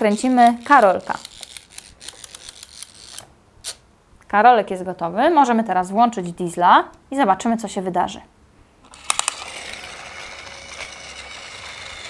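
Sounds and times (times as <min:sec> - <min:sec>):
wind-up toy plastic clicks: 0:00.1 - 0:03.8, 0:08.8 - 0:12.0.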